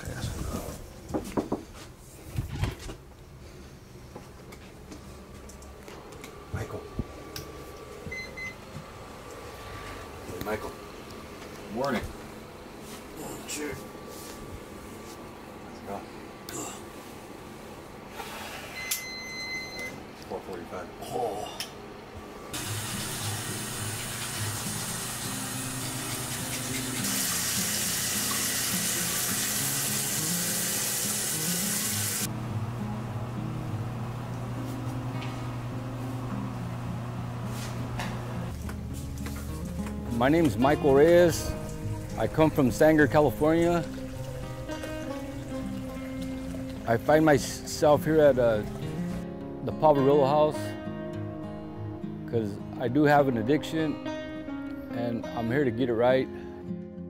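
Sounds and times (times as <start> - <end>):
slow background music: 22.6 - 57.0.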